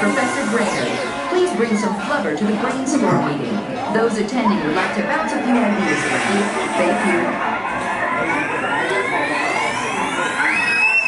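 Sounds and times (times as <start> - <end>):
murmur of crowd voices: 0.0 - 11.0
rising whistle-like tone: 6.2 - 11.0.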